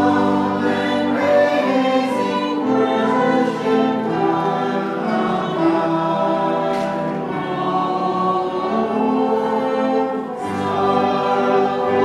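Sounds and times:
choir singing a hymn: 0:00.0 - 0:12.0
piano: 0:00.0 - 0:12.0
violin: 0:00.0 - 0:12.0.

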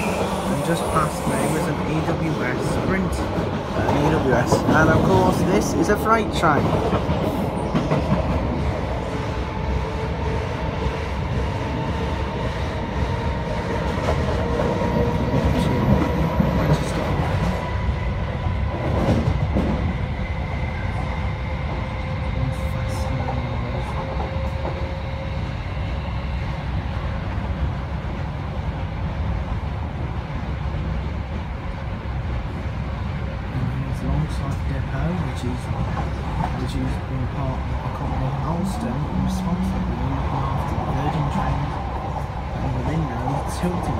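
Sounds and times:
train wheels rumbling on rails: 0:00.0 - 0:43.9
clickety-clack over rail joints: 0:01.5 - 0:09.3, 0:10.2 - 0:17.6, 0:18.7 - 0:20.0, 0:23.1 - 0:25.0, 0:34.0 - 0:43.9.

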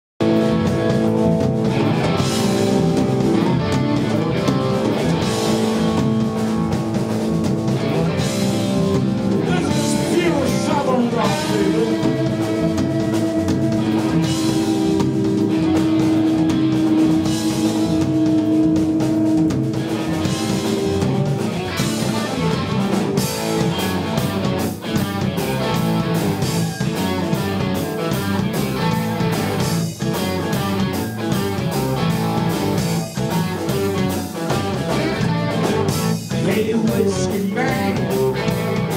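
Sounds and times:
rock band playing: 0:00.2 - 0:38.9.

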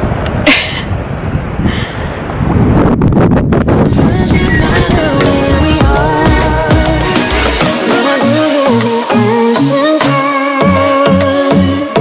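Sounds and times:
wind buffeting microphone: 0:00.0 - 0:07.1.

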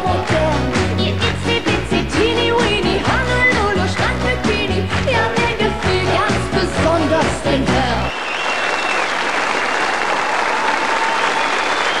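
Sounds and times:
song music: 0:00.0 - 0:08.2
audience applauding: 0:08.1 - 0:12.0.

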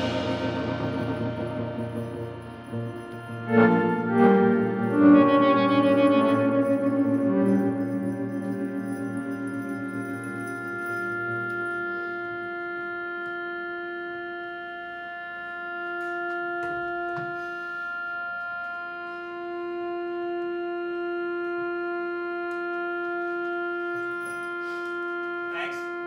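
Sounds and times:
sustained drone note: 0:00.0 - 0:26.0.

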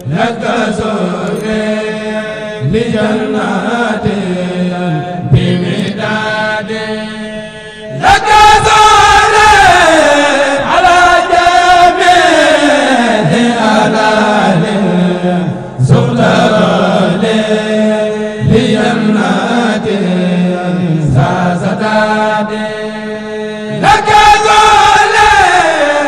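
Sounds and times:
man chanting: 0:00.0 - 0:26.0.

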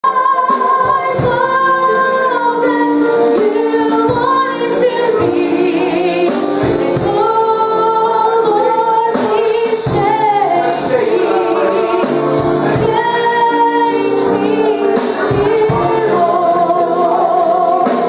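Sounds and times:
band playing worship music: 0:00.0 - 0:18.0
woman singing: 0:00.0 - 0:18.0
drum and cymbal hits: 0:00.1 - 0:18.0.

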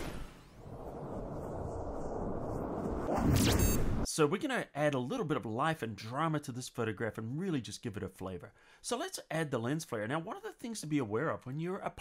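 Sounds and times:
low rumble sound effect: 0:00.0 - 0:04.1.

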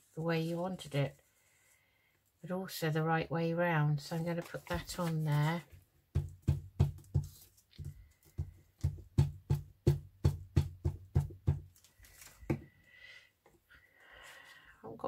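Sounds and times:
plastic bottle knocking on table: 0:06.2 - 0:11.7, 0:12.5 - 0:12.7.

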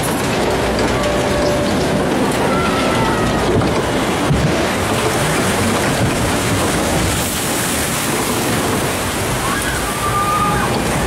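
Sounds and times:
water rushing in a channel: 0:00.0 - 0:11.0.

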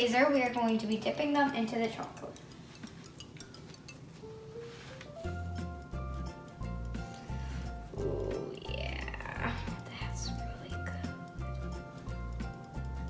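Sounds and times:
sliding voice-like sound: 0:08.0 - 0:08.8.

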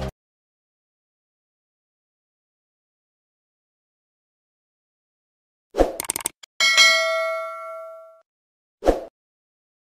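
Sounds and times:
quick clicks: 0:05.8 - 0:06.5
bright bell-like ding: 0:06.6 - 0:08.2.

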